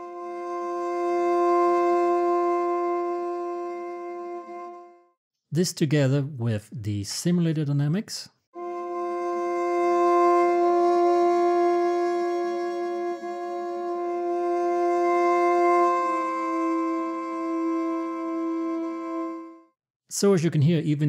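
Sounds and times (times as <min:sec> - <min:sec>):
sampled viola held chord: 0:00.0 - 0:05.2, 0:08.6 - 0:19.8.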